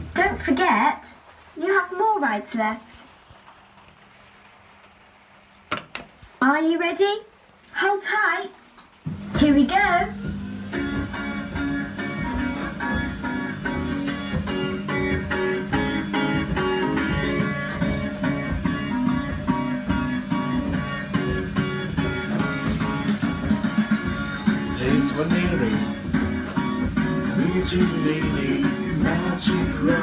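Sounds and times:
kiddie ride instrumental music: 10.1 - 30.0.

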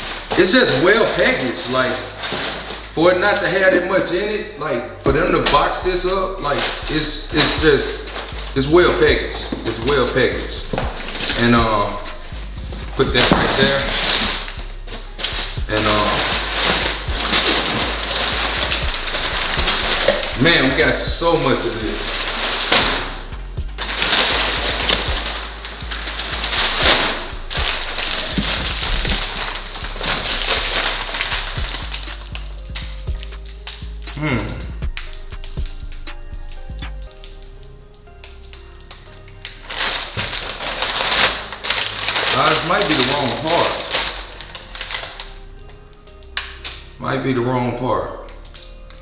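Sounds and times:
packing paper rustling and crinkling: 0.0 - 4.2, 5.1 - 37.5, 38.2 - 47.0
background music with bass: 0.0 - 49.0.

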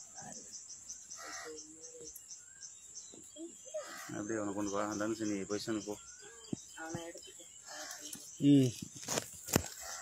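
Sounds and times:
faint insect chirping: 0.0 - 10.0.

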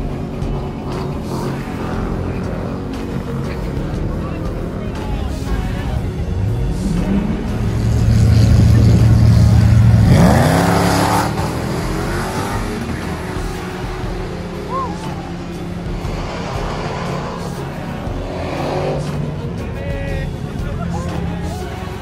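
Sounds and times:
drag racing car engines revving: 0.0 - 22.0.

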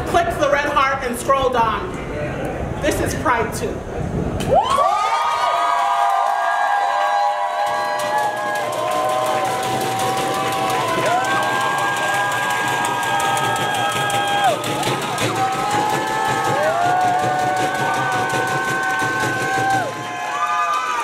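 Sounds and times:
audience cheering and whooping: 4.4 - 21.0.

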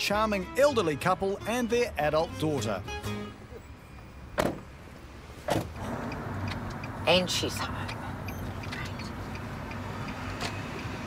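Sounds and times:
car doors shutting: 4.3 - 4.7, 5.4 - 7.0.

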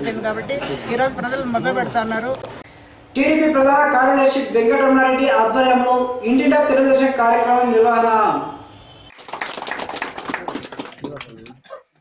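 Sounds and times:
small group clapping: 9.1 - 12.0.

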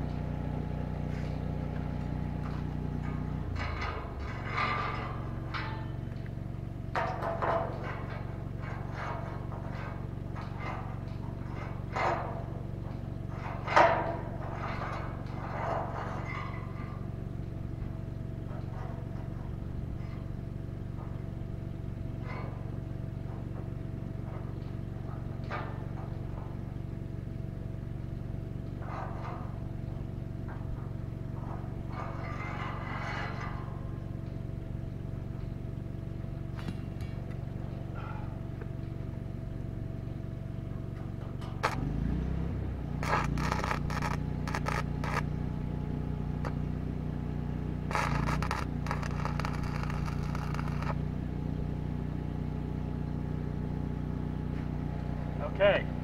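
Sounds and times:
engine humming: 0.0 - 56.0
welding arc crackling: 43.0 - 45.3, 47.8 - 51.0.

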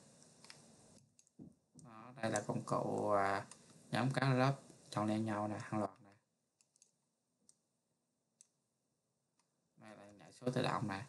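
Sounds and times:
computer mouse clicks: 0.2 - 3.8, 5.8 - 7.6, 8.4 - 8.6.

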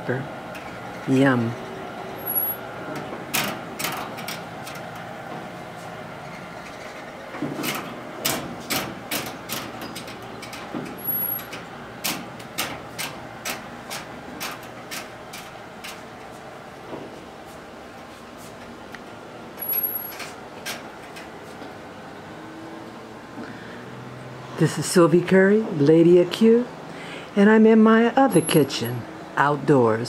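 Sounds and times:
gas grill hissing: 0.0 - 6.3, 7.2 - 22.4.

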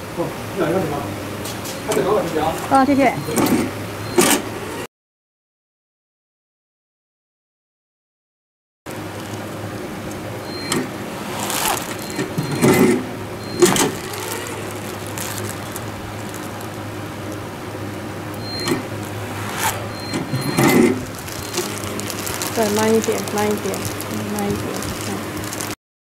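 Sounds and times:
strapping machine motor whirring: 1.9 - 4.8, 9.0 - 25.8
steady machine hum: 8.9 - 25.8.

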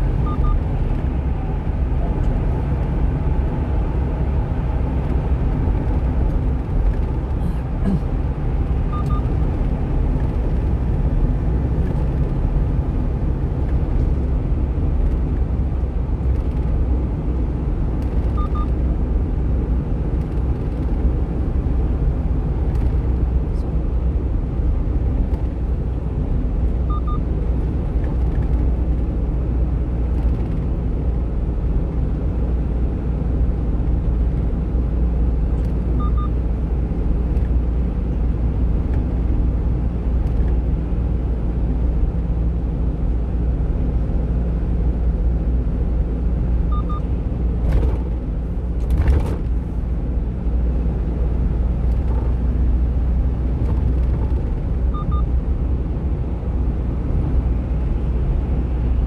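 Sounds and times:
truck engine and road rumble: 0.0 - 59.0.

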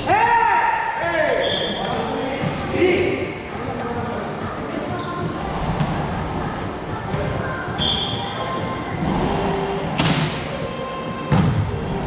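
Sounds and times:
hollow hall echo: 0.0 - 12.0.

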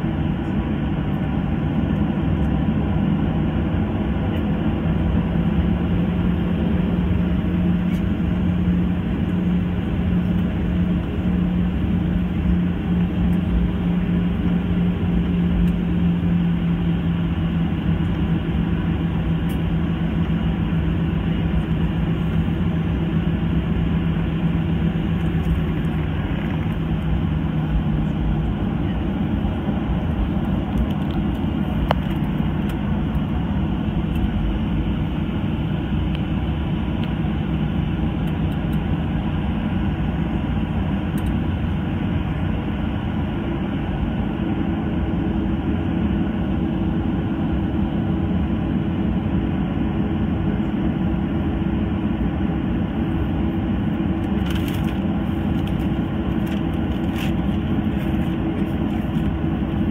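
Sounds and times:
aircraft cabin engine noise: 0.0 - 59.9.

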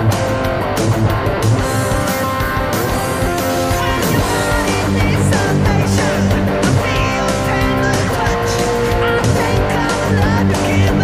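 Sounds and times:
electric guitar solo: 0.0 - 11.0
rock backing track: 0.0 - 11.0.

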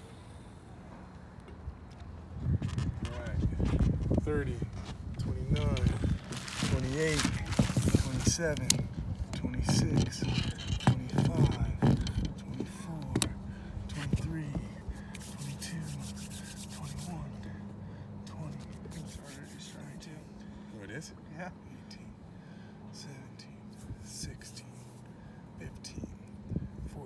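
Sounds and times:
steady low hum: 0.0 - 27.0.

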